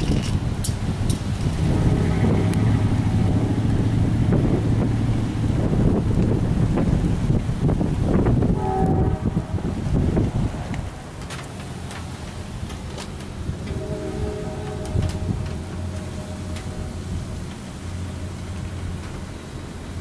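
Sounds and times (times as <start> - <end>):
low steady hum: 0.0 - 20.0
wind gusting across microphone: 0.0 - 20.0.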